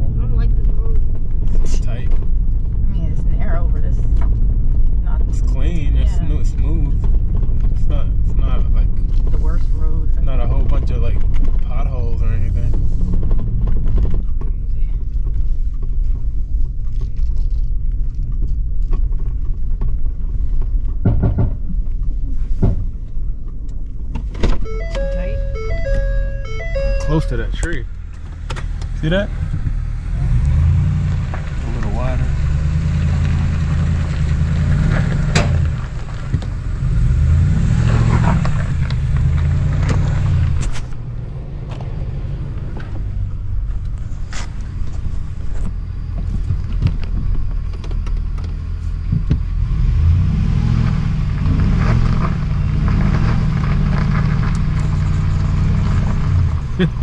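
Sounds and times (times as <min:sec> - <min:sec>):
truck engine rumble: 0:00.0 - 0:57.0.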